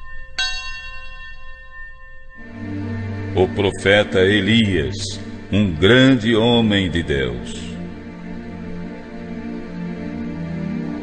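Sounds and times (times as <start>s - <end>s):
bell-like chime ringing: 0.0s - 3.9s.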